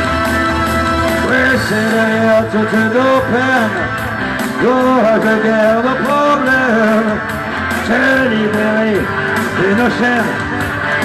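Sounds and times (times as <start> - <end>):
live rock band playing: 0.0 - 11.0
melodic line over band: 0.0 - 11.0.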